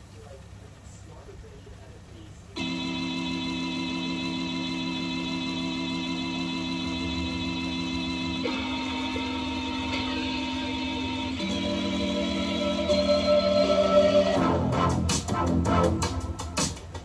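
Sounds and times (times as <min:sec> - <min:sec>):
music with held chords: 0:02.6 - 0:17.0.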